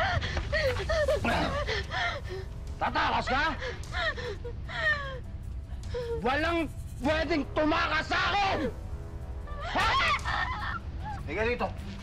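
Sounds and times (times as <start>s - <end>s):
woman's wordless distress cries: 0.0s - 6.4s, 8.4s - 11.3s.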